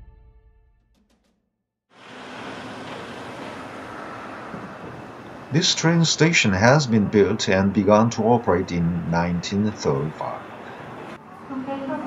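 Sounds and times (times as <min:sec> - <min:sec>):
rushing outdoor background noise: 0:01.9 - 0:12.0.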